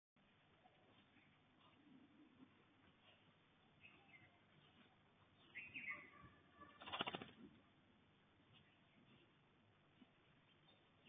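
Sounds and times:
whistled bird calls: 5.5s - 6.7s
rapid rattling bird call: 6.7s - 7.4s.

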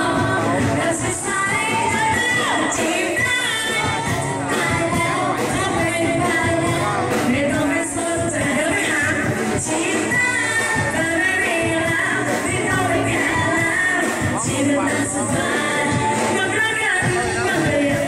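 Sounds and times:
band playing pop song: 0.0s - 18.0s
drum kit beat: 0.0s - 18.0s
women singing together: 0.0s - 18.0s.

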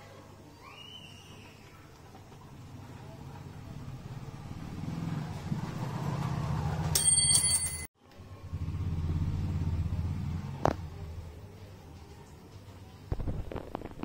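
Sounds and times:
vehicle engine rumbling: 8.3s - 14.0s.

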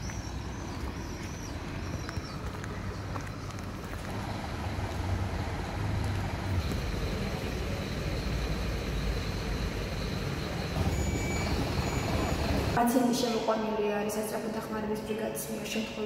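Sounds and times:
motor vehicles rumbling: 0.0s - 12.8s
outdoor street noise: 0.0s - 16.0s.

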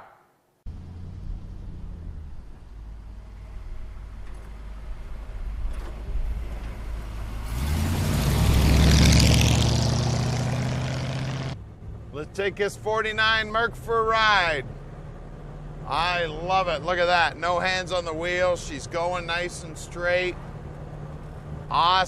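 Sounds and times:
car engine driving by: 0.7s - 22.0s.

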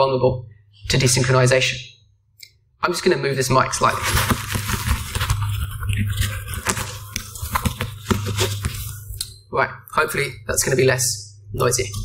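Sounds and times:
rustling on lapel microphone: 3.7s - 9.2s.

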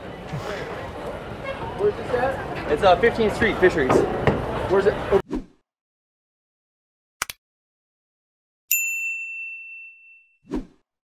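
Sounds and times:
bright bell-like ding: 8.7s - 10.4s.

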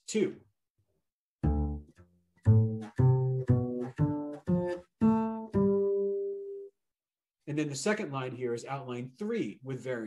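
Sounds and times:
plucked double bass: 1.4s - 6.3s.

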